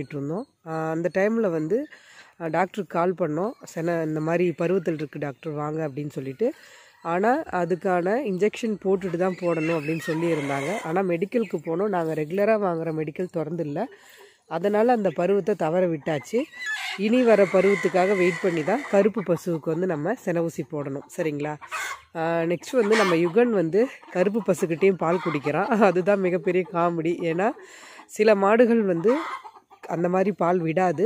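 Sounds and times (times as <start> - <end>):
chickens clucking: 0.0 - 31.0
person talking: 0.0 - 31.0
woman's voice: 0.0 - 31.0.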